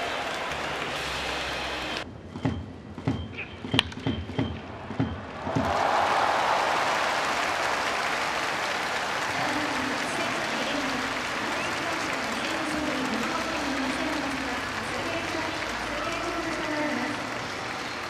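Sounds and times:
stadium crowd applauding: 0:00.0 - 0:02.0, 0:05.4 - 0:18.0
faint voices: 0:09.0 - 0:18.0.

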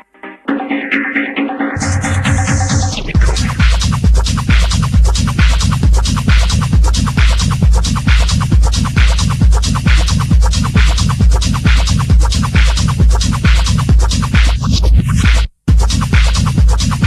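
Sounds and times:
hi-hat and percussion patterns: 0:00.0 - 0:17.0
techno kick drum: 0:00.5 - 0:17.0.

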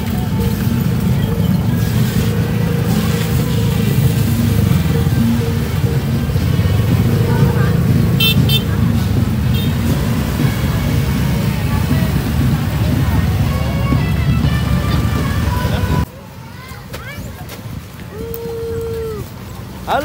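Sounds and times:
scooter engines rumbling: 0:00.0 - 0:20.0
voices: 0:00.0 - 0:20.0.

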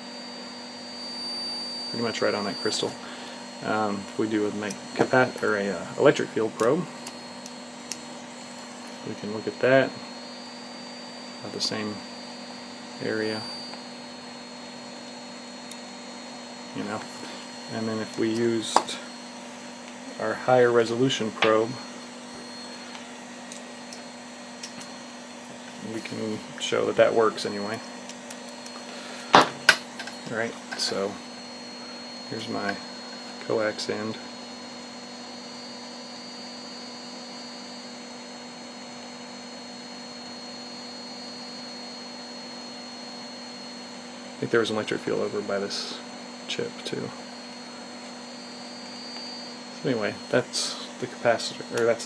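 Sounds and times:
electrical hum with hiss: 0:00.0 - 0:52.0
faint high whine: 0:00.0 - 0:52.0
man speaking: 0:02.0 - 0:07.0, 0:09.0 - 0:10.0, 0:11.4 - 0:12.0, 0:13.0 - 0:13.5, 0:16.7 - 0:19.1, 0:20.1 - 0:22.6, 0:25.8 - 0:27.8, 0:30.2 - 0:31.2, 0:32.3 - 0:32.8, 0:33.4 - 0:34.2, 0:44.4 - 0:47.2, 0:49.8 - 0:52.0.

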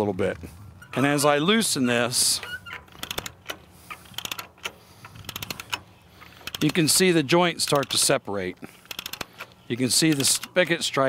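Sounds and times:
ratchet pawl clicks: 0:02.4 - 0:08.2, 0:08.8 - 0:10.7.

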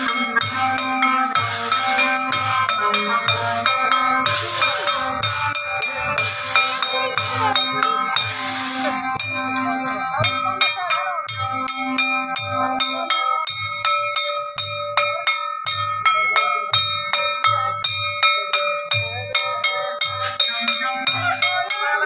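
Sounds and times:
brass plates struck ringing: 0:00.0 - 0:22.0
low drum beats: 0:00.0 - 0:22.0.

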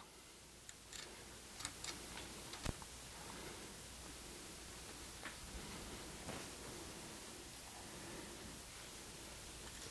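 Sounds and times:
small clicks of metal parts: 0:00.7 - 0:02.7.

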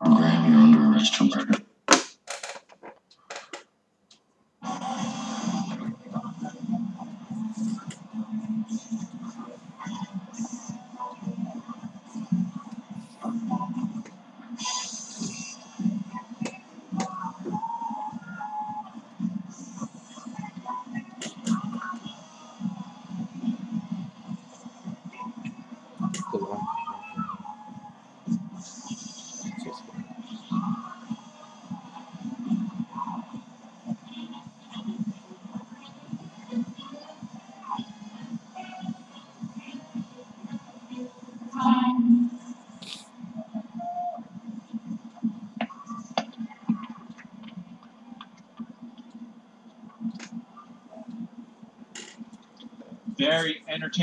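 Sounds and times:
indistinct tv voices: 0:00.0 - 0:01.7, 0:04.6 - 0:54.0
music from tv speaker: 0:04.6 - 0:54.0.

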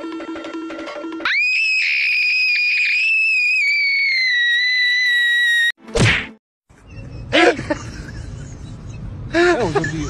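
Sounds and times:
girl screaming: 0:01.2 - 0:05.7.

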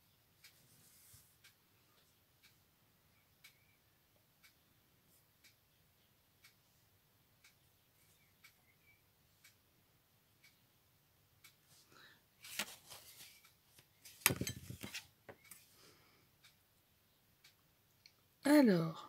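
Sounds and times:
faint ticking: 0:01.3 - 0:12.1.

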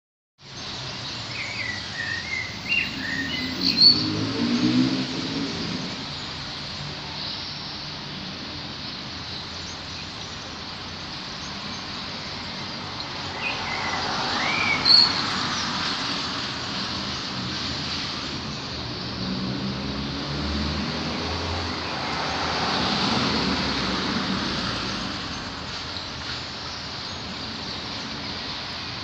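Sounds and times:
road vehicles passing: 0:00.4 - 0:29.0.

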